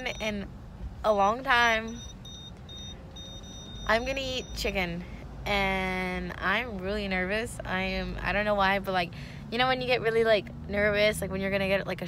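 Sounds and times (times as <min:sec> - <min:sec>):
faint two-tone electronic beeping: 0:00.0 - 0:00.5, 0:01.6 - 0:04.8.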